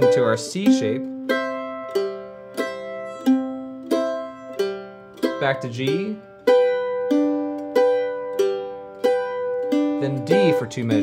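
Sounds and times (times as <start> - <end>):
mandolin boom-chuck strumming: 0.0 - 11.0.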